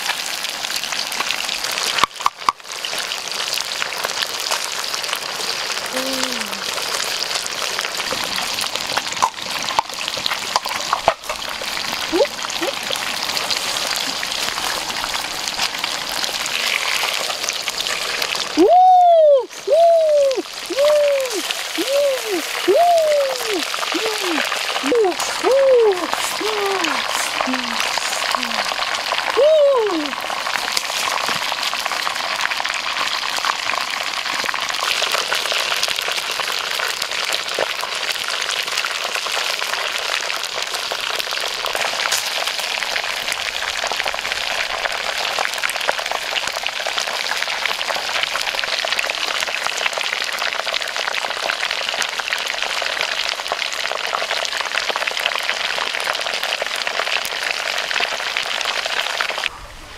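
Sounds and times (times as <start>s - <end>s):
fish sizzling in hot oil: 0.0s - 18.6s, 20.4s - 20.7s, 21.4s - 21.8s, 22.4s - 22.7s, 23.6s - 59.5s.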